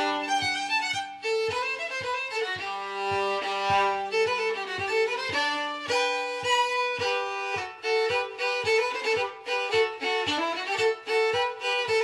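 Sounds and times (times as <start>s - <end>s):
violin playing held notes: 0.0s - 12.0s.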